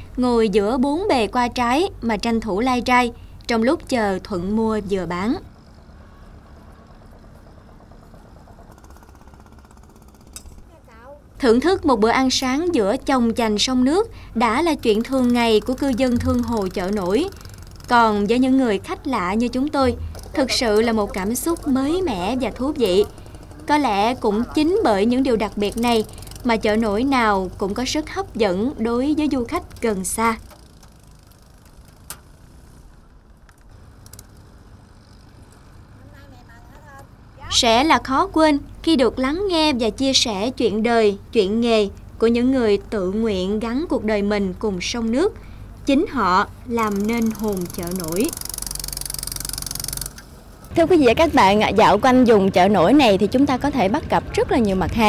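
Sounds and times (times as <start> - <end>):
boat engine humming: 0.0 - 55.0
rapid fine ticking: 2.2 - 10.5, 12.8 - 36.0, 45.2 - 55.0.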